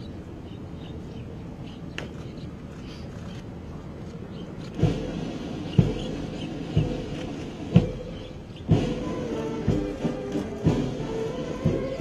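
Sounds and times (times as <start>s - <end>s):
sustained brass notes: 6.8s - 12.0s.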